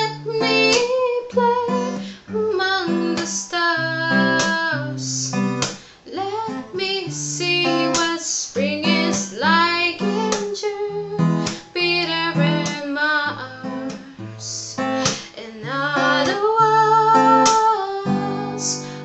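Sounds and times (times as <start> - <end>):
acoustic guitar: 0.0 - 19.0
woman singing: 0.0 - 19.0.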